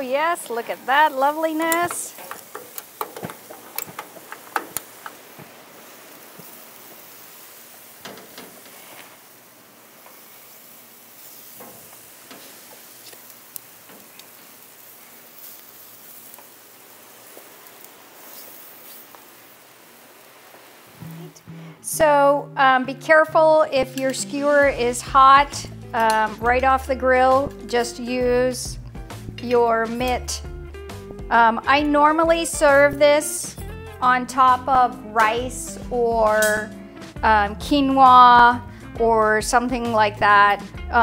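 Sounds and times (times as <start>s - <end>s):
skewers sizzling on a grill: 0.0s - 22.2s, 22.8s - 41.0s
metal skewers clinking: 1.3s - 5.3s.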